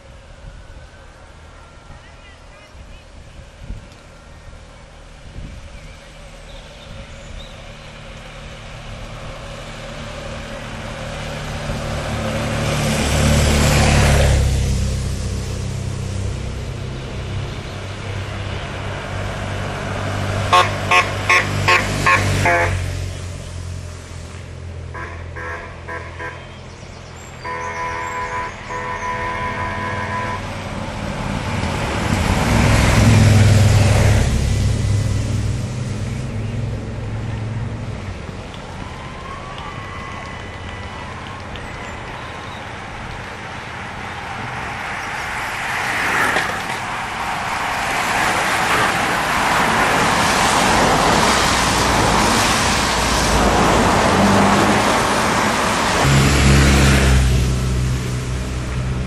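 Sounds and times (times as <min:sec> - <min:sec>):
vehicles passing with engines running: 0:00.0 - 0:59.0
vehicle horn toots and beeps: 0:20.5 - 0:22.8, 0:25.0 - 0:26.5, 0:27.4 - 0:30.5.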